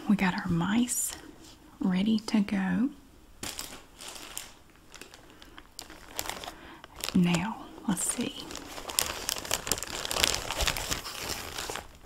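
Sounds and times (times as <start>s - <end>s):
plastic bag crinkling: 3.4s - 12.0s.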